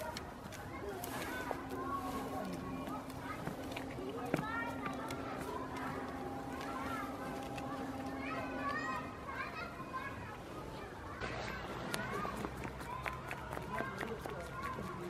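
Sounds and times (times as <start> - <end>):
goat crunching cucumber: 0.0 - 8.8, 11.3 - 15.0.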